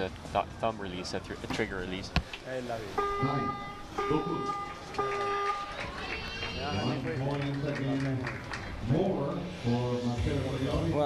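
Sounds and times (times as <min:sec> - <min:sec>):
voices: 0:00.0 - 0:11.0
beep tone: 0:03.0 - 0:05.8.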